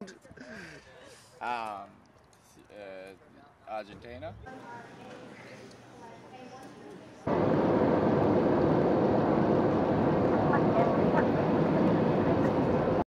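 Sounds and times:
jet engine noise inside cabin: 7.2s - 13.0s.

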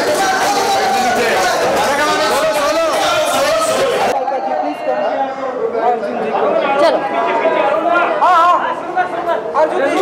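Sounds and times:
crowd voices talking: 0.0s - 10.0s.

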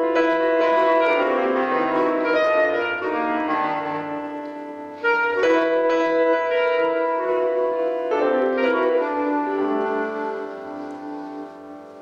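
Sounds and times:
clarinet: 0.0s - 12.0s
grand piano: 0.0s - 12.0s.

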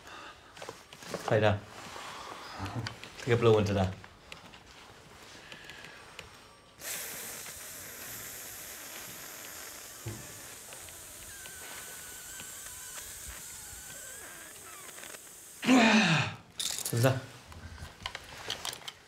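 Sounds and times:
breath blown into breathalyser: 6.8s - 16.3s.

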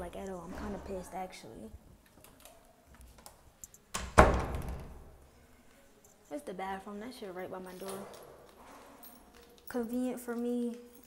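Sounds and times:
door shutting thud: 4.0s - 5.0s.

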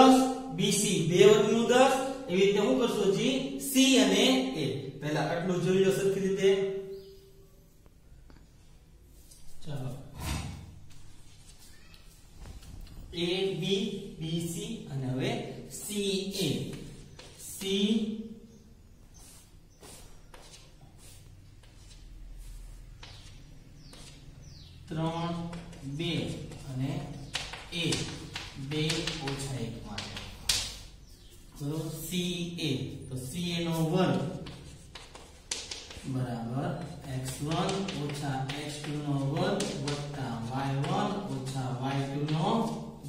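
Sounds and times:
man speaking: 0.0s - 6.9s, 9.5s - 10.7s, 13.1s - 18.4s, 24.8s - 30.5s, 31.5s - 34.5s
faint chalk taps: 16.7s - 17.4s, 19.2s - 24.7s, 25.4s - 31.4s, 34.1s - 36.1s, 36.7s - 42.8s
chalk scraping on blackboard: 19.2s - 24.2s.

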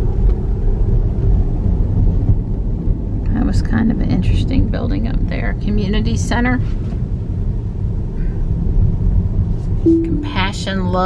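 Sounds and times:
road and tyre rumble in cabin: 0.0s - 11.0s.

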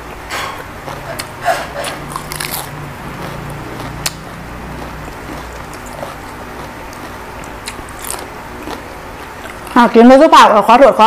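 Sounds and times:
crunchy cabbage chewing: 0.5s - 9.8s.

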